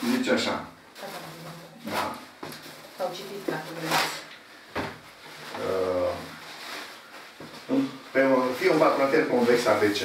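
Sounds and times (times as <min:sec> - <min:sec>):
paper rustling and crackling: 0:01.0 - 0:04.3, 0:04.9 - 0:10.0.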